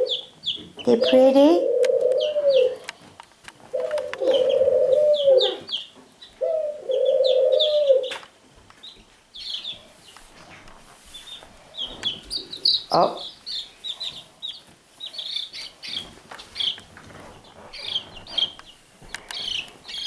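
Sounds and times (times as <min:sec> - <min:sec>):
baby chicks peeping: 0:00.0 - 0:20.0.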